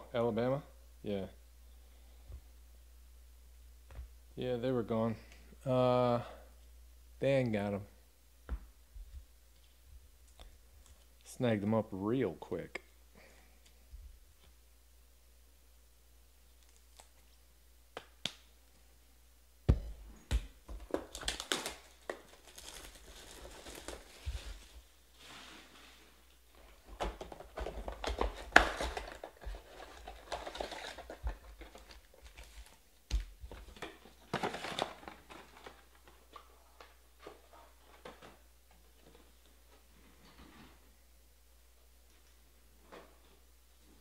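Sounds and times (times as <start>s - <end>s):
foil wrappers crinkling: 20.8s - 24.9s, 26.8s - 37.0s.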